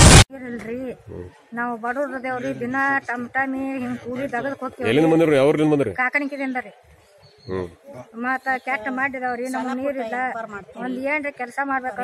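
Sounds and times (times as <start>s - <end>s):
woman speaking: 8.2s - 12.0s.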